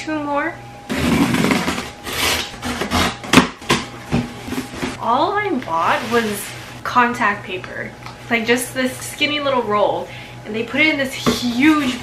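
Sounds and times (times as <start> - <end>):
box cutter slicing cardboard: 0.9 - 3.8.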